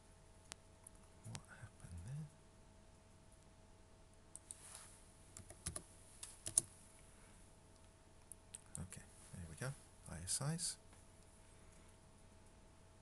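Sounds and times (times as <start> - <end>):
faint keyboard typing: 4.3 - 6.8.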